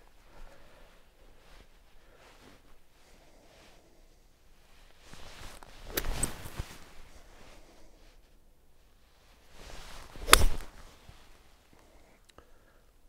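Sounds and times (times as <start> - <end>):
golf club swish: 5.2 - 7.7, 9.6 - 11.4
golf club striking ball: 10.2 - 10.7.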